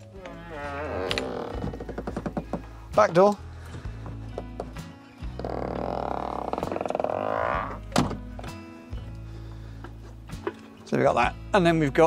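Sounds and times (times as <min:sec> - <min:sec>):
door creaking: 0:00.0 - 0:02.7, 0:05.3 - 0:08.2
background music: 0:00.0 - 0:12.0
door closing thunk: 0:07.9 - 0:08.6.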